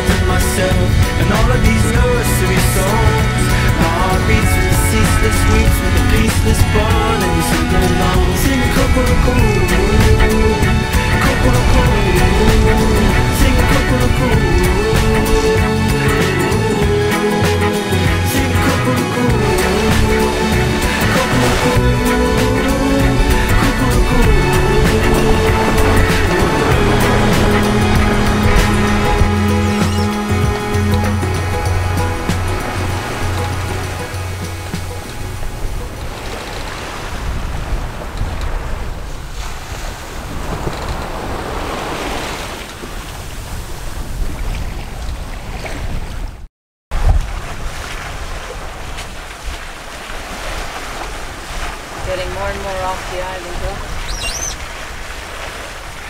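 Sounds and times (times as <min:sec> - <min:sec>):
background music: 0:00.0 - 0:36.4
wind rushing: 0:00.0 - 0:45.0
waves around sailboat: 0:00.0 - 0:56.0.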